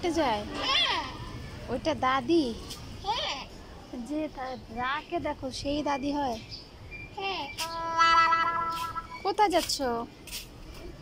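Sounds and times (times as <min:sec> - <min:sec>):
toddler babbling: 0:07.2 - 0:09.1.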